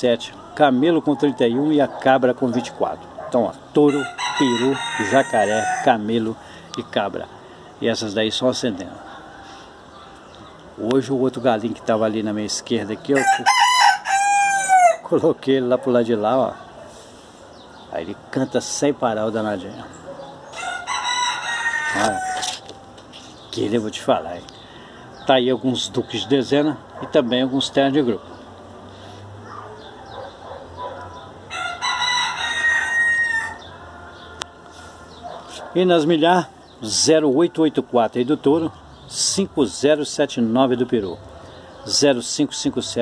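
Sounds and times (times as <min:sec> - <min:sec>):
rooster crowing: 0:03.8 - 0:06.1, 0:13.1 - 0:15.1, 0:20.3 - 0:22.6, 0:31.5 - 0:35.0.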